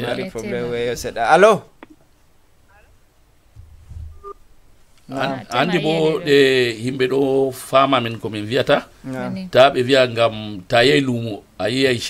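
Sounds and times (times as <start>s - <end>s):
short electronic beep: 4.0s - 4.4s.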